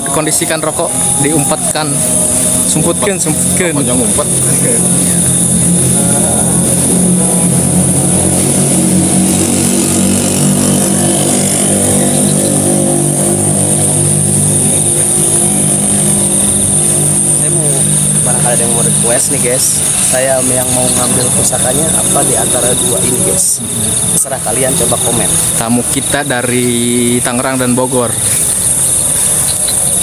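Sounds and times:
engine humming: 0:00.0 - 0:30.0
high-pitched whine: 0:00.0 - 0:30.0.

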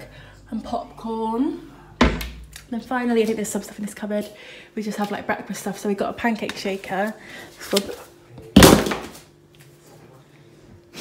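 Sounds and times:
plastic bottle hitting tiled floor: 0:08.6 - 0:09.3.

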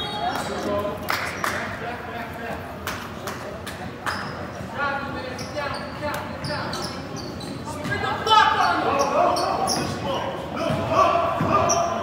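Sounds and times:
echoing voices in a gymnasium: 0:00.0 - 0:12.0
sneakers squeaking on hardwood: 0:04.1 - 0:12.0.

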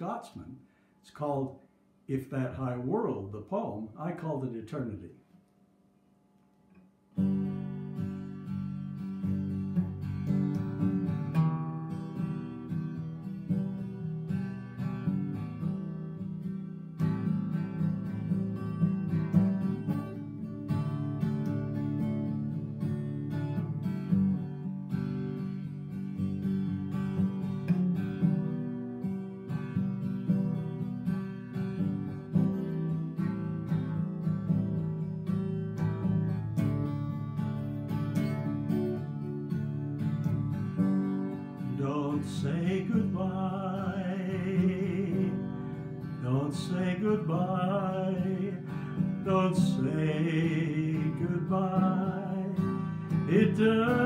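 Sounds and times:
acoustic guitar strummed: 0:07.1 - 0:54.0.

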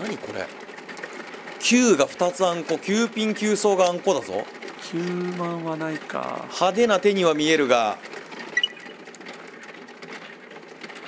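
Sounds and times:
mahjong tiles clicking rattle: 0:00.0 - 0:11.0.

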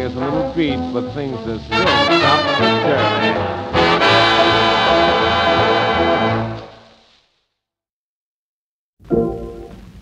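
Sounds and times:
swing band closing chord: 0:00.0 - 0:06.8.

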